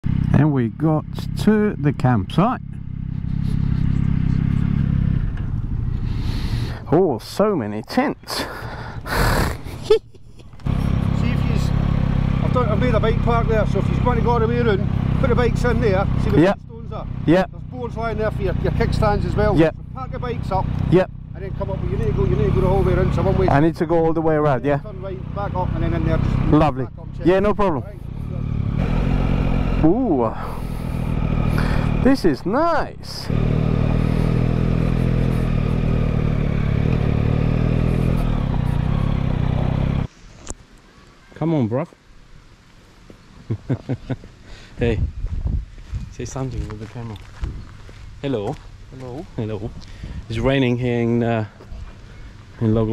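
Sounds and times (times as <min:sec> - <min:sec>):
motorcycle engine running: 0:00.0 - 0:06.9, 0:08.8 - 0:40.1.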